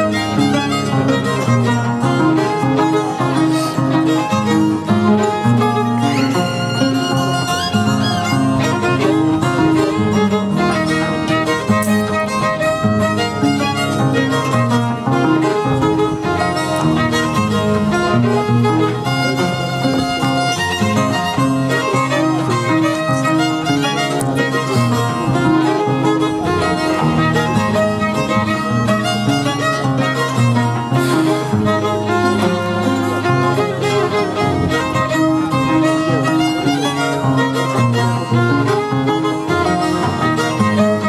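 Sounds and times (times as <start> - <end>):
harp playing: 0.0 - 41.0.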